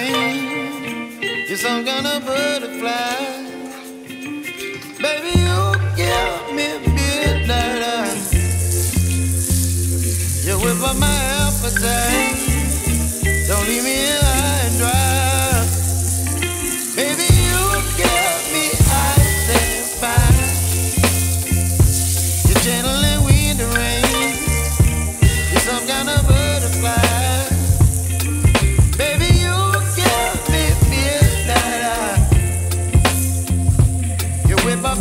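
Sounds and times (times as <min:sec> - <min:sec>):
song with singer and bass: 0:00.0 - 0:35.0
meat sizzling in a frying pan: 0:07.5 - 0:35.0.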